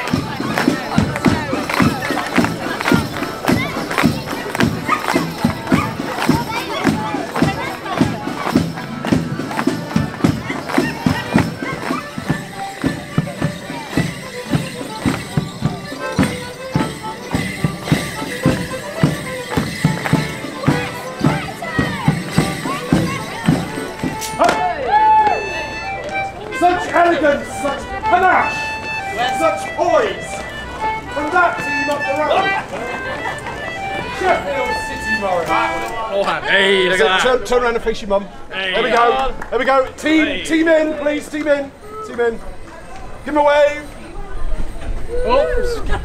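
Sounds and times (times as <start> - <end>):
feet striking paving: 0.0 - 36.0
folk dance band playing: 0.0 - 37.5.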